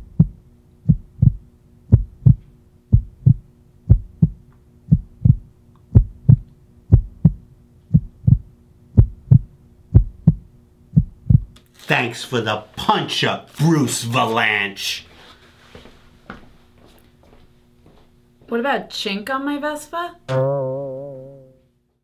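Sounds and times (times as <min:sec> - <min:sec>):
heartbeat double thump: 0:00.0 - 0:11.6
faint steady hum: 0:00.0 - 0:21.9.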